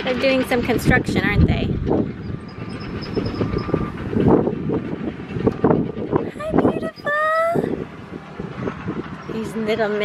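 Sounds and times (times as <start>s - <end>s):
construction machinery rumble: 0.0s - 10.0s.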